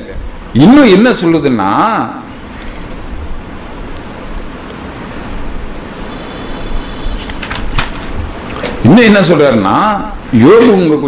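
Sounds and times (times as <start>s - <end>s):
steady hiss: 0.0s - 10.6s.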